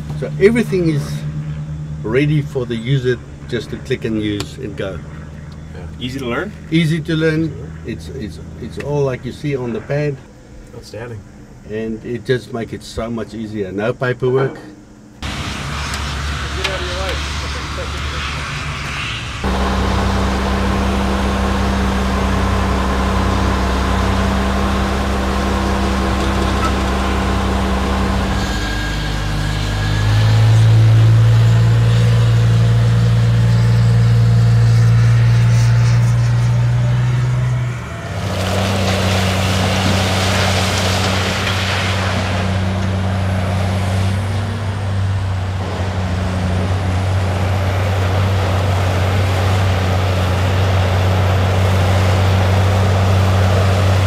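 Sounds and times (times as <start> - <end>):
diesel truck engines running: 0.0 - 12.6, 14.7 - 54.0
rushing noise: 15.2 - 50.7.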